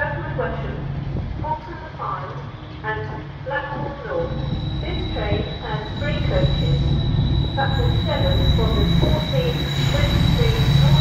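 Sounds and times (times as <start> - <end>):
diesel locomotive engine rumble: 0.0 - 11.0
thin high whine: 4.3 - 11.0.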